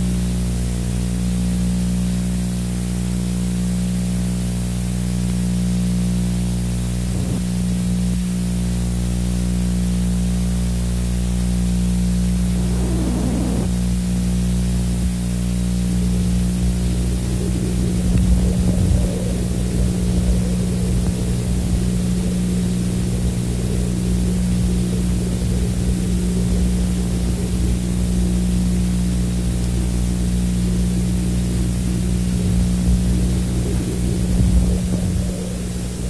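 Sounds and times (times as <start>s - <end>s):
steady low hum: 10.4s - 14.3s, 14.9s - 36.0s
fluttering rumble: 10.8s - 36.0s
constant hiss: 12.0s - 13.8s
brief rough burst: 12.2s - 13.8s.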